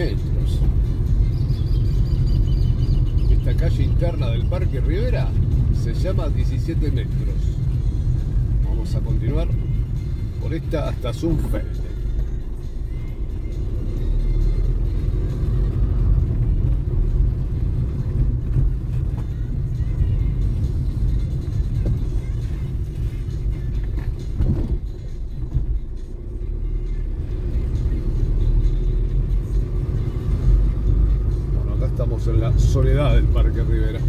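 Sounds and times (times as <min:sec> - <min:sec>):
car engine and tyres rumbling: 0:00.0 - 0:34.0.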